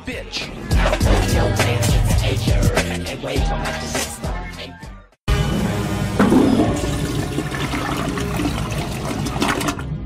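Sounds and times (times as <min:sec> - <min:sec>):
toilet flushing: 0:05.4 - 0:10.0.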